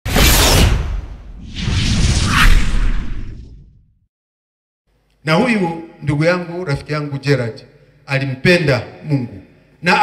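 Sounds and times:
whoosh sound effects: 0.1s - 3.8s.

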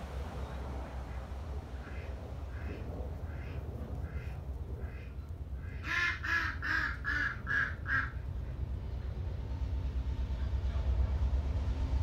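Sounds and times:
steady low rumble: 0.0s - 12.0s
duck quacking: 1.8s - 8.2s.

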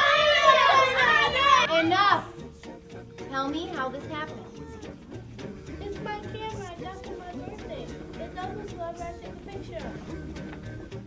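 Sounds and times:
children arguing: 0.0s - 2.5s, 3.2s - 5.1s, 5.7s - 10.0s
background music: 0.0s - 11.0s.

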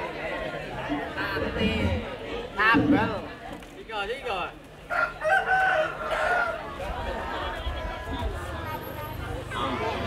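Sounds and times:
rooster crowing: 4.9s - 6.6s.

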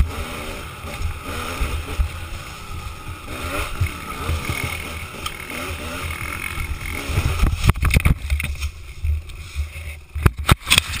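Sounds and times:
dirt bike engine rumbling: 0.0s - 11.0s
wind noise on microphone: 6.5s - 11.0s.

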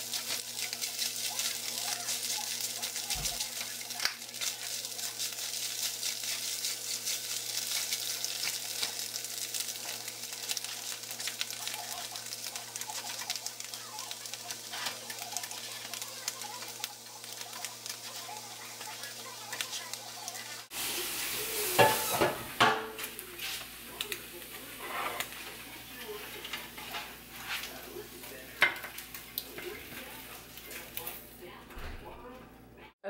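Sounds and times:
spatula stirring eggs: 0.0s - 20.7s, 23.4s - 31.2s
eggs sizzling in a frying pan: 0.0s - 31.7s.

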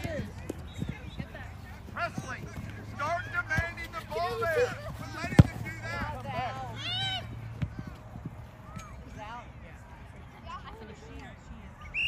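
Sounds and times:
ball kicked with thud: 5.2s - 5.7s.

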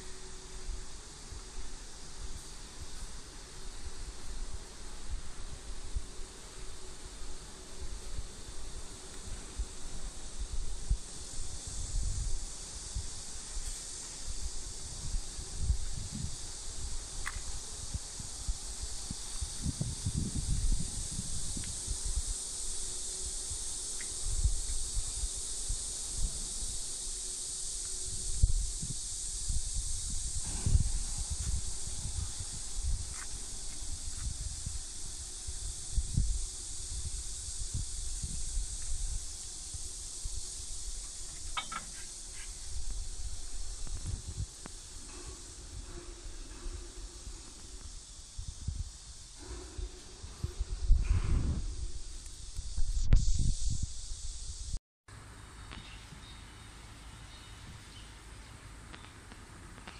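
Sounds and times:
wind rumble on microphone: 0.0s - 54.8s
insects hissing in trees: 0.0s - 59.9s.

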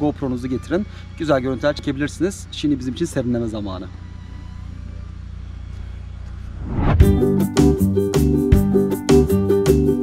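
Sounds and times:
music: 0.0s - 10.0s
rising whoosh: 6.4s - 7.9s.

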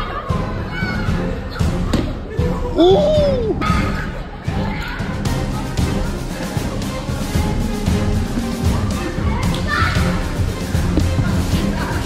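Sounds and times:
children shouting and playing: 0.0s - 12.0s
music with heavy bass: 5.2s - 12.0s.

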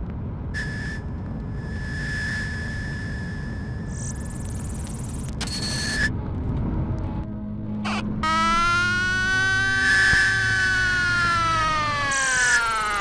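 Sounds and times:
low steady hum: 0.0s - 13.0s
burst of electronic noise: 0.6s - 6.1s
buzzy sliding synth tone: 0.6s - 6.1s, 7.8s - 13.0s.

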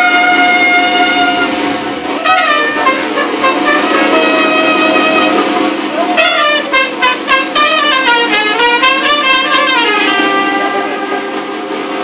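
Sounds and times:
brass band playing held chords: 0.0s - 12.0s.

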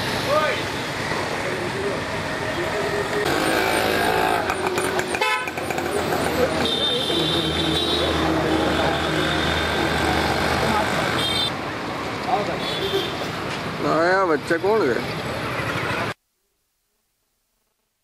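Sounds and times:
busy street traffic: 0.0s - 16.2s
vehicle horns tooting: 3.3s - 11.5s.

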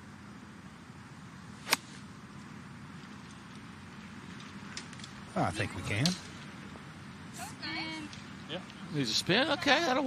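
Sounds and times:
faint outdoor background: 0.0s - 10.0s
golf club striking ball: 1.6s - 2.0s.

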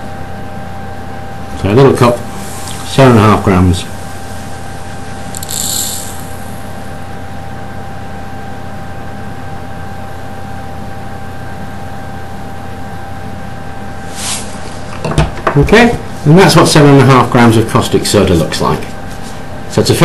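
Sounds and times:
faint high whine: 0.0s - 14.9s
background hum: 0.0s - 20.0s
granules pouring hiss: 2.3s - 6.8s.

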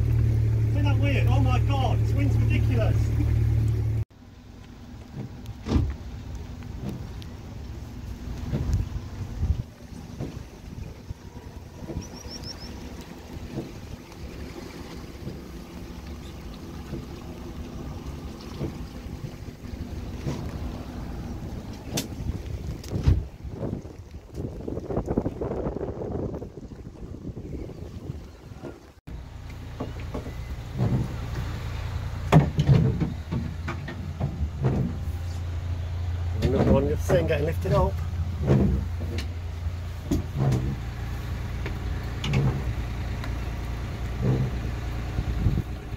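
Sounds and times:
boat engine running: 0.0s - 45.9s
wind gusting on microphone: 8.2s - 14.0s, 18.6s - 29.0s, 44.3s - 45.9s.

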